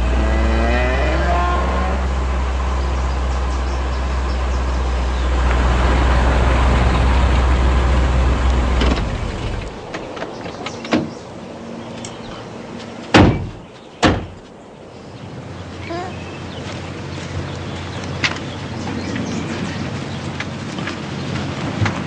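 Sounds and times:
car engine revving: 0:00.0 - 0:10.1
road noise: 0:00.0 - 0:22.0.

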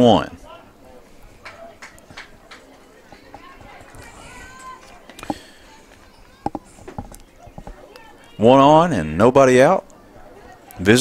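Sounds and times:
faint distant voices: 0:00.0 - 0:11.0
field ambience: 0:00.0 - 0:11.0.

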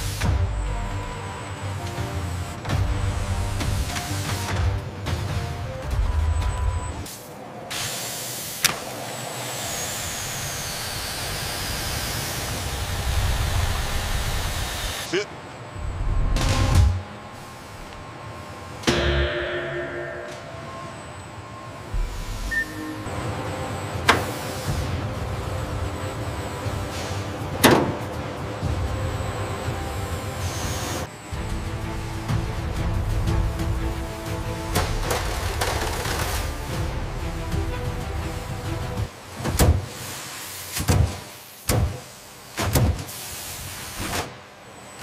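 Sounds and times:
mechanical hum and hiss: 0:00.0 - 0:45.0
background music: 0:00.1 - 0:07.1, 0:18.9 - 0:39.2
sharp knocks: 0:18.9 - 0:21.0.

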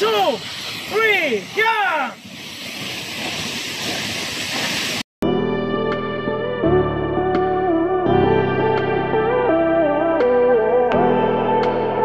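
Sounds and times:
waterfall rushing hiss: 0:00.0 - 0:05.1.

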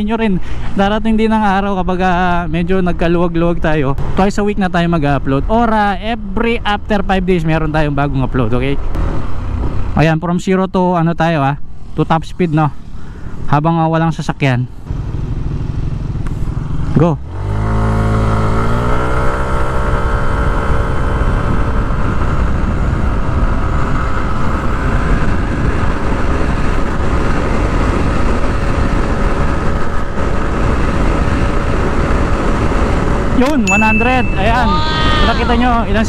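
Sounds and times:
wind noise: 0:08.8 - 0:10.1, 0:15.9 - 0:36.0.

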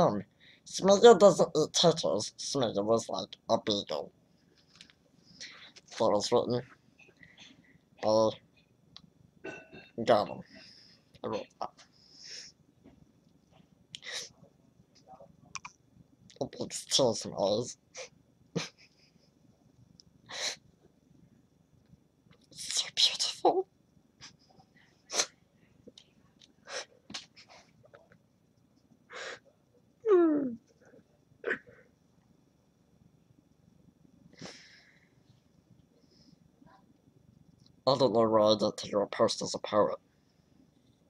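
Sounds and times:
man sobbing: 0:18.6 - 0:18.9
person sniffling: 0:29.1 - 0:29.4, 0:34.4 - 0:35.0.

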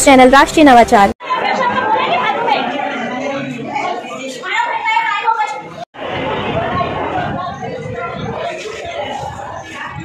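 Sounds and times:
crowd of people talking: 0:00.0 - 0:10.0.

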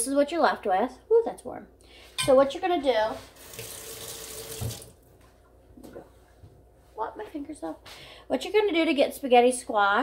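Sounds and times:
water running: 0:03.0 - 0:05.2.

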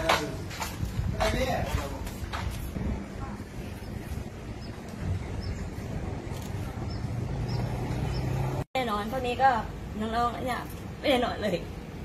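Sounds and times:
wind on microphone: 0:00.4 - 0:08.6
vehicle noise: 0:01.8 - 0:12.0.

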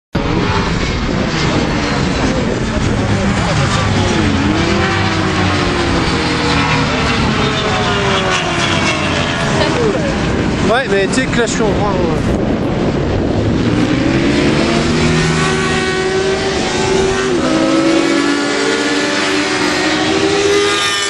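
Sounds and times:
motorcycle engines revving: 0:00.2 - 0:21.0.

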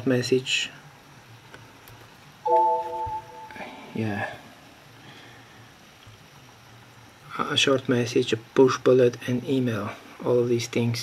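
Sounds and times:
computer system chime: 0:02.5 - 0:03.6.

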